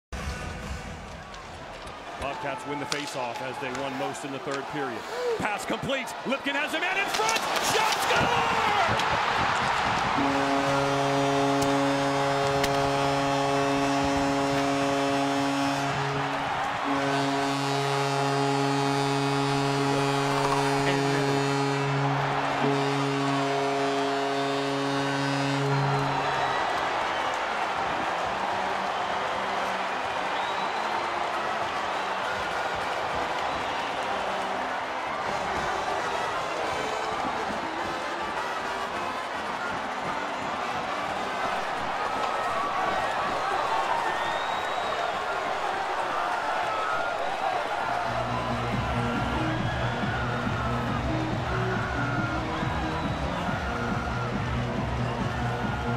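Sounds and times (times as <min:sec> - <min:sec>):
crowd cheering: 0:00.2 - 0:55.9
goal horn blasts: 0:10.0 - 0:27.4.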